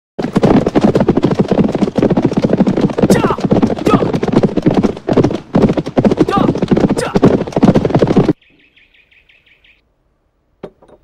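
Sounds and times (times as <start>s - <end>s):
horses galloping: 0.2s - 8.4s.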